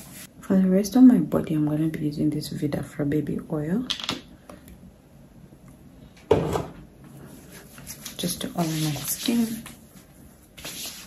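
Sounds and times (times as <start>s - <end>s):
hard object clunk: 6.3s - 6.8s.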